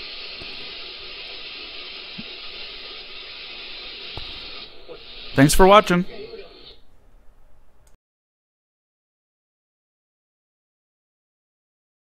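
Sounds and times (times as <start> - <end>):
shortwave radio static hiss: 0.0 - 7.0.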